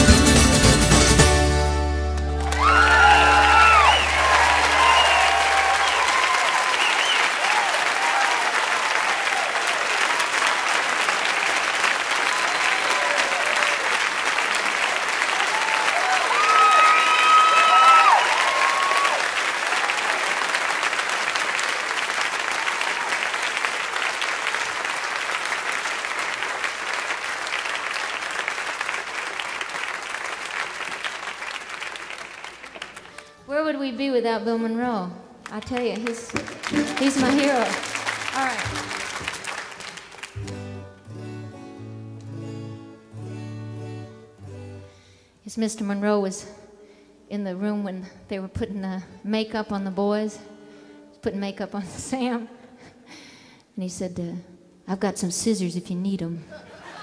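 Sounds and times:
audience applauding: 2.2s - 33.4s, 35.4s - 41.0s
crowd cheering and whooping: 2.3s - 10.4s, 12.1s - 14.2s, 15.2s - 20.5s.

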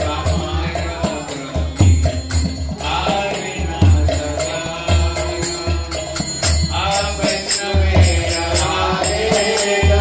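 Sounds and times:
hand cymbals: 0.0s - 10.0s.

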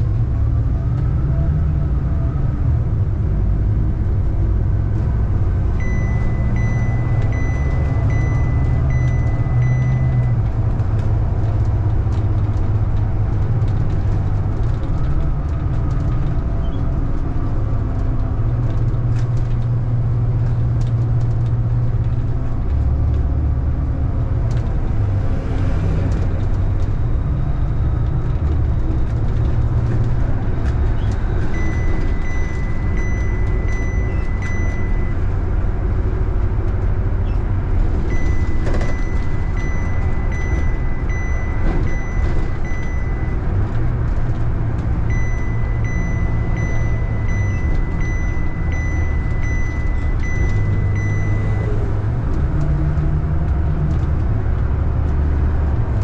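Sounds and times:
bus engine droning with rattles: 0.0s - 56.0s
high-pitched beep: 5.8s - 10.4s, 31.6s - 35.2s, 38.1s - 43.5s, 45.1s - 51.8s.

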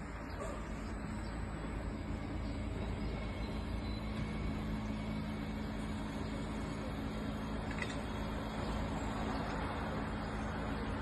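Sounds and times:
bus driving past: 0.0s - 11.0s
road noise: 0.0s - 11.0s.

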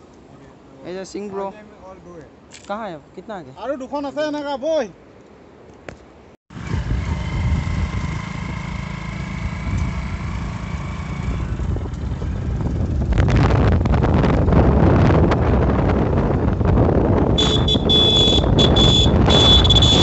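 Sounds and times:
vehicle engine rumble: 6.5s - 20.0s
wind buffeting microphone: 6.5s - 20.0s.

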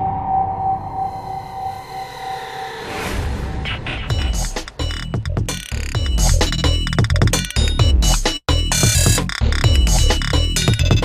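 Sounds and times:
whoosh: 0.0s - 4.2s
held tone: 4.1s - 11.0s.

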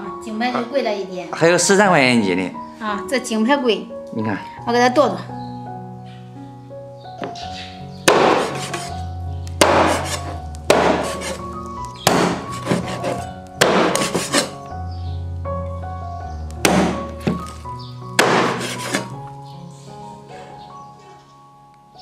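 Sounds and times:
background music: 0.0s - 22.0s
cleaver chopping on wooden board: 8.0s - 9.0s, 9.6s - 11.4s, 12.0s - 14.6s, 16.6s - 17.6s, 18.2s - 19.1s.

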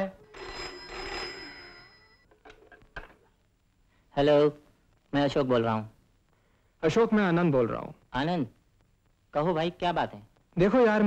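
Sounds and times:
telephone bell ringing: 0.0s - 2.4s.

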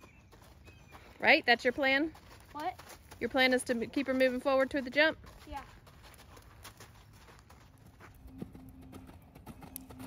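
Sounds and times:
horse hoofbeats: 0.0s - 10.0s.

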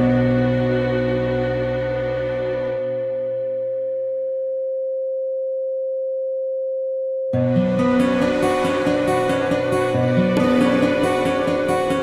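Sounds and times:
music: 0.0s - 4.7s, 7.4s - 12.0s
steady sine tone: 0.0s - 12.0s.

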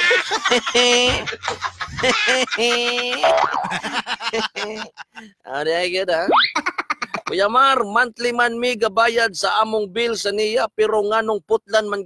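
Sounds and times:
man vocalising in sing-song: 2.6s - 3.5s.

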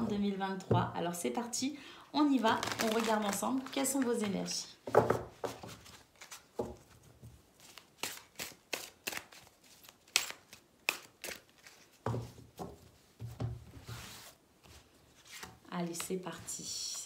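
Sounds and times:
cards being shuffled: 5.5s - 6.6s, 7.6s - 12.0s.

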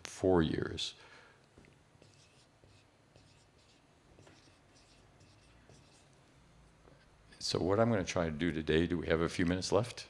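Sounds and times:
marker writing on whiteboard: 2.0s - 6.2s.

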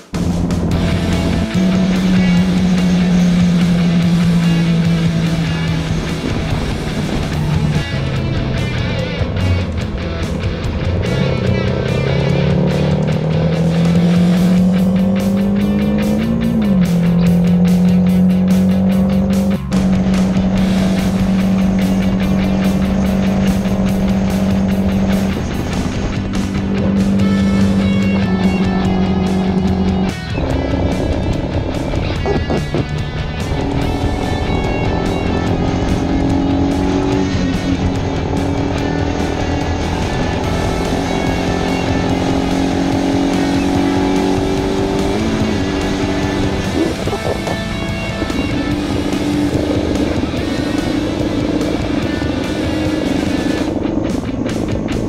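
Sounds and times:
background music: 0.0s - 55.0s
motorcycle engine running: 0.0s - 55.0s
wind noise: 0.3s - 11.6s, 19.6s - 40.6s, 44.1s - 55.0s.

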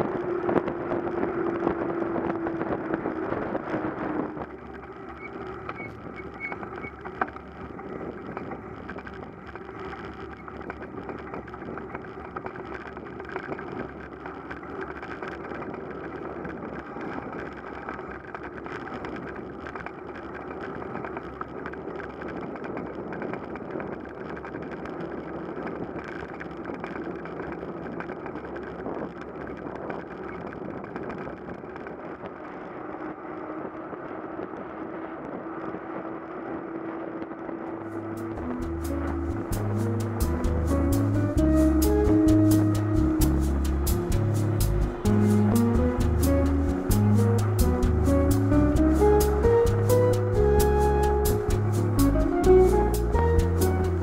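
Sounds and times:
bicycle road noise: 0.0s - 54.0s.

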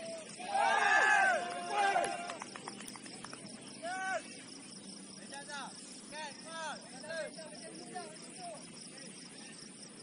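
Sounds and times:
player shouting: 0.0s - 2.4s.

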